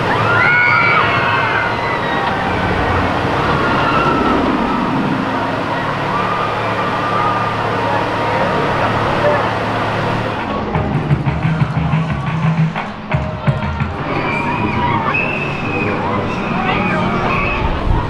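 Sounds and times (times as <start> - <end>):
people's voices: 0.0 - 18.0
roller coaster rumbling on track: 0.0 - 18.0.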